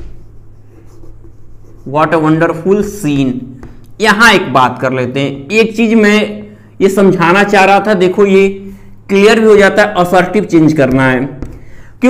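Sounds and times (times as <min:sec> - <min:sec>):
chalk scratching on chalkboard: 0:00.0 - 0:03.0, 0:10.7 - 0:11.6.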